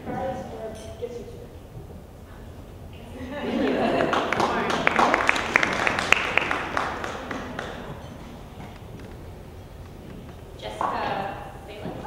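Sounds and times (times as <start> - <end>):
audience applause: 3.5 - 9.1.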